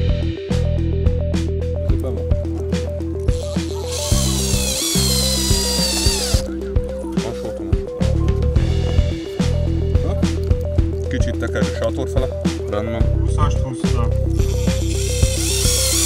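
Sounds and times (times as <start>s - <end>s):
background music with steady beat: 0.0s - 16.0s
cordless drill driving screw: 3.3s - 6.5s, 14.5s - 16.0s.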